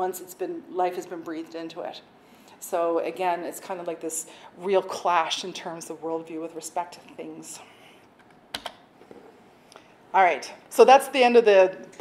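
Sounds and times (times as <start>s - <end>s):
laptop keys clicking: 8.2s - 8.8s.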